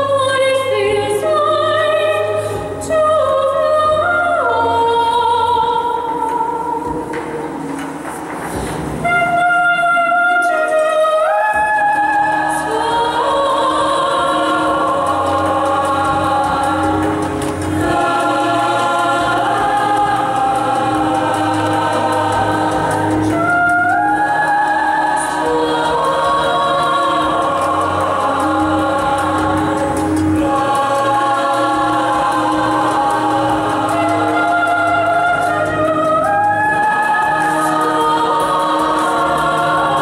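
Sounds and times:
choir singing in harmony: 0.0 - 40.0.

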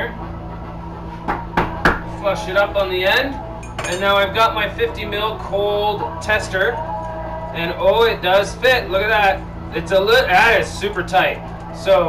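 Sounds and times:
steady low hum: 0.0 - 12.0
glass rods knocking together: 3.6 - 4.1.

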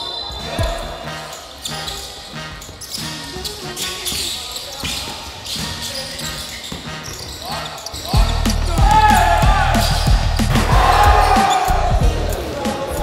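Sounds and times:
sneakers squeaking on hardwood: 0.0 - 11.8
heavy bass music beat: 0.6 - 1.2, 8.2 - 13.0.

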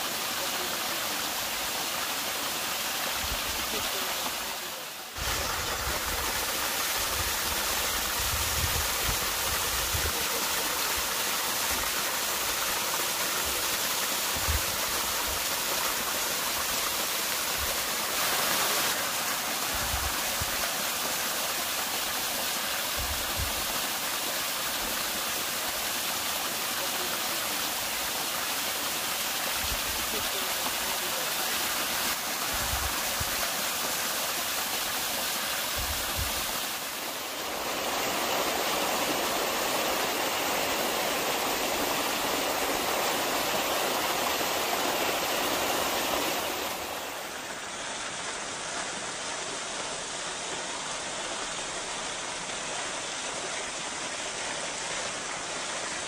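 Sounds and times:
waterfall splashing: 0.0 - 56.0.

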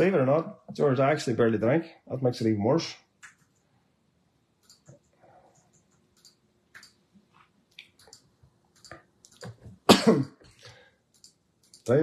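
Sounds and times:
man coughing: 9.9 - 10.4.

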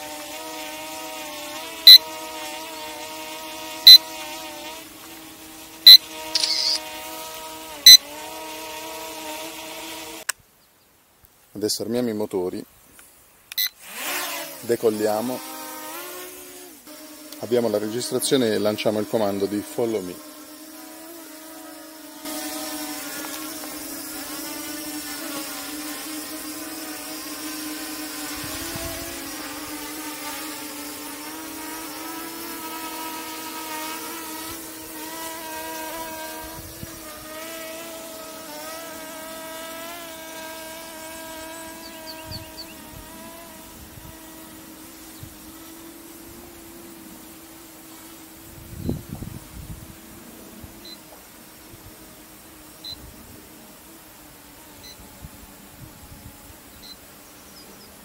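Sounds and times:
drone propellers buzzing: 0.0 - 9.2, 22.2 - 51.0.

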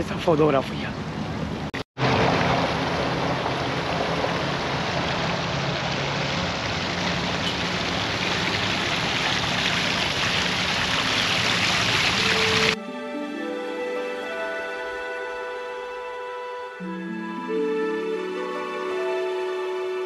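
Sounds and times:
splashing running water: 2.0 - 12.8.

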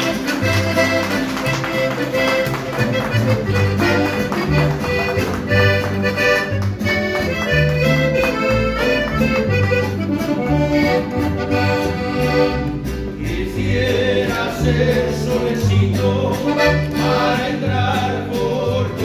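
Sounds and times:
accordion folk music: 0.0 - 19.0
bass line: 0.0 - 19.0.

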